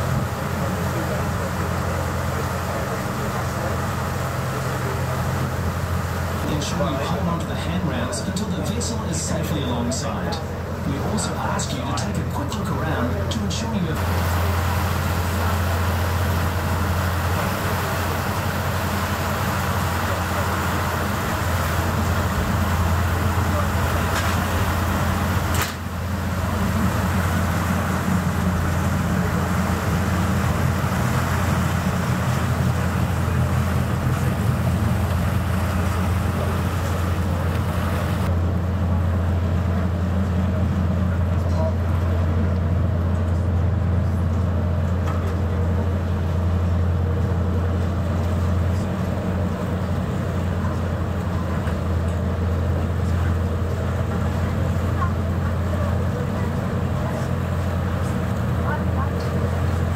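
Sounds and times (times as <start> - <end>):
ferry engine drone: 0.0 - 59.9
water noise: 0.0 - 59.9
wind: 0.0 - 59.9.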